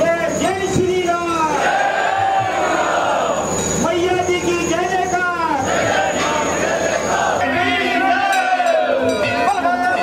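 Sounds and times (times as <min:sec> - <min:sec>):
crowd of men chanting: 0:01.5 - 0:03.5, 0:05.5 - 0:09.2.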